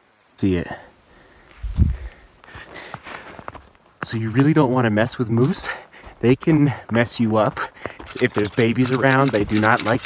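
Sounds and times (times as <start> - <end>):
footsteps in snow: 1.4 - 9.7.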